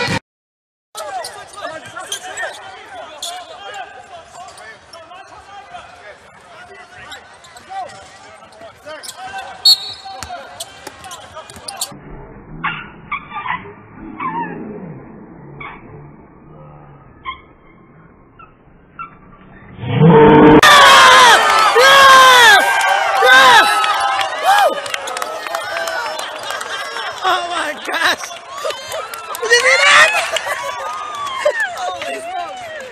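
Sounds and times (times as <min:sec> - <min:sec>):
sneaker squeaks: 0:01.0 - 0:03.7, 0:06.9 - 0:11.9, 0:18.4 - 0:19.7
crowd cheering and shouting: 0:20.4 - 0:32.9.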